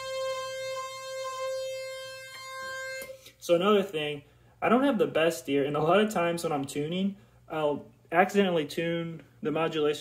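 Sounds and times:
buzzy synthesizer note: 0:00.0 - 0:03.7.

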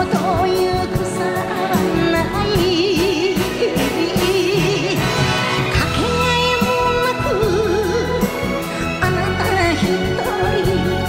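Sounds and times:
orchestral backing: 0:00.0 - 0:11.0
woman singing a ballad: 0:00.0 - 0:11.0.

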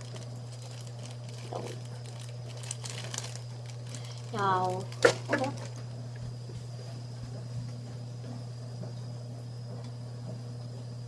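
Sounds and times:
plastic bag crinkling: 0:00.0 - 0:05.9
steady low hum: 0:00.0 - 0:11.0.

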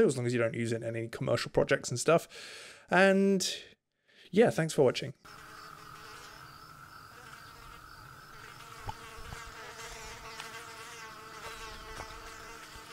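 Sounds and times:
flies buzzing: 0:05.3 - 0:12.9.

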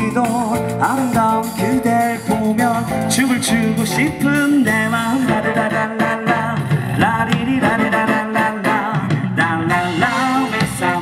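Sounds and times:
lead vocal singing: 0:00.0 - 0:11.0
live band playing: 0:00.0 - 0:11.0.

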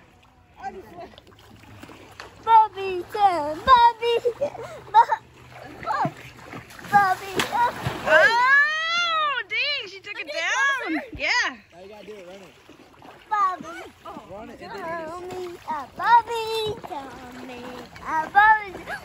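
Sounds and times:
water splashing: 0:00.0 - 0:19.0
people laughing: 0:04.0 - 0:05.4
excited voices: 0:07.2 - 0:11.6.

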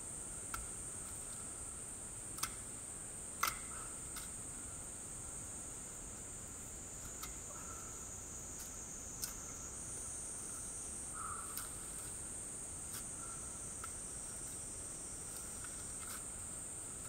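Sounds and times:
high-pitched insect chorus: 0:00.0 - 0:17.0.

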